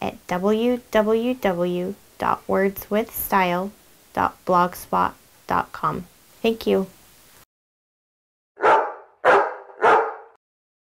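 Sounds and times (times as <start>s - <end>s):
dog barking: 8.6s - 10.4s.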